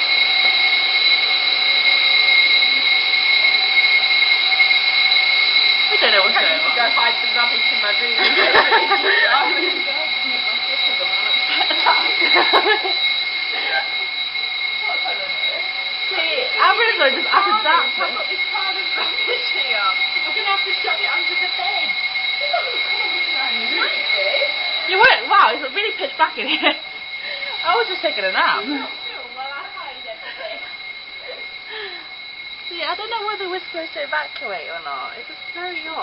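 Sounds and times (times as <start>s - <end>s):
fire alarm tone: 0.0s - 36.0s
faint voices: 1.4s - 32.1s.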